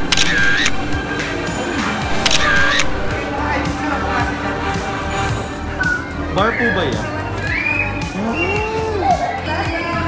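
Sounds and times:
camera shutter sound effect: 0.0s - 1.0s, 2.1s - 3.2s
background music: 0.0s - 10.0s.

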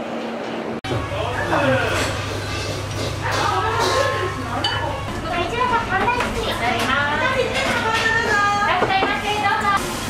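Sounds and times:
diners chattering: 0.9s - 9.8s.

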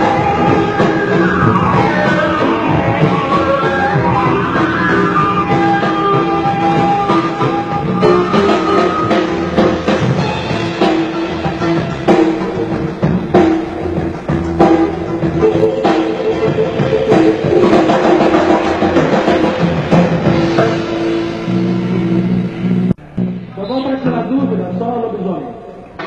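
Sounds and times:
rock band playing live: 0.0s - 23.5s
drum kit strikes: 4.0s - 22.4s.

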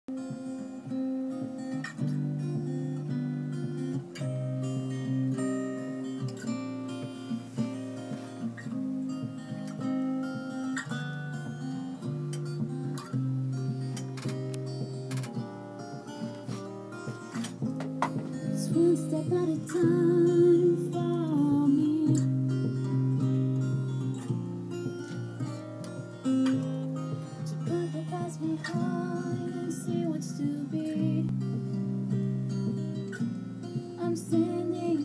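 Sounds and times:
acoustic guitar picking: 0.1s - 35.0s.

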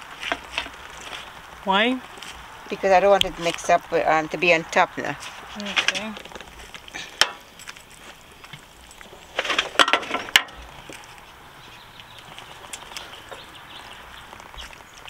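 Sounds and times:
utensils scraping and clattering: 9.0s - 10.6s.

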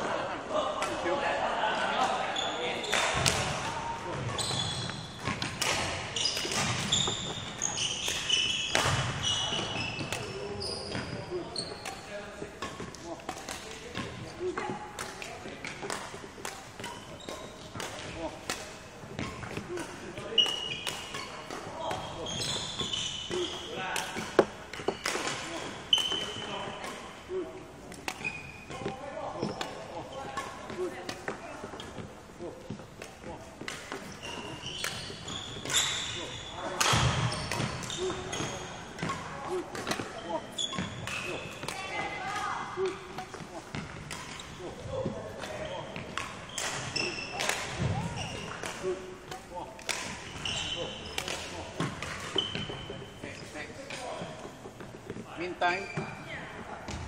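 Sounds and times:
sports shoes squeaking: 2.1s - 57.0s.

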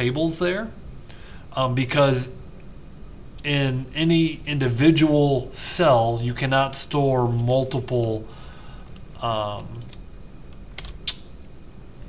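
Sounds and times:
low steady hum: 0.0s - 12.0s
computer clicks: 9.5s - 10.0s.

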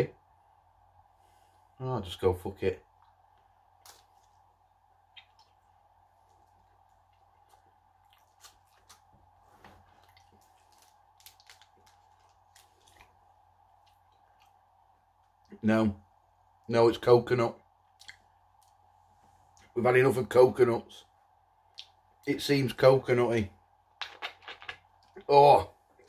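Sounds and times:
faint room hum: 0.0s - 26.0s
mouth chewing wet clicks: 5.1s - 9.0s, 17.9s - 18.8s, 21.7s - 22.0s.

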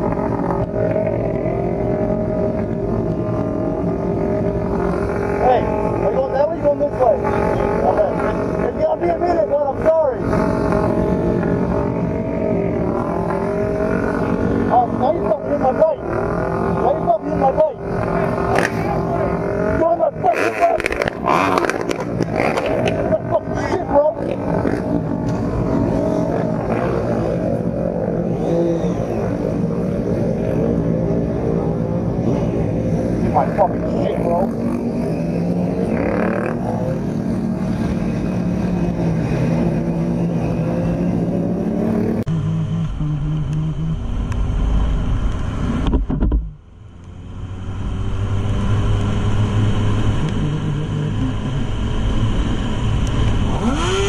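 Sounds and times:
motorcycle engines revving: 0.0s - 54.0s.

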